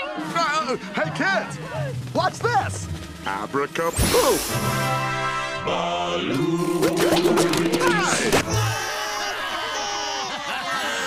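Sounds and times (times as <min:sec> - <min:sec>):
cartoon voices crying: 0:07.7 - 0:11.0.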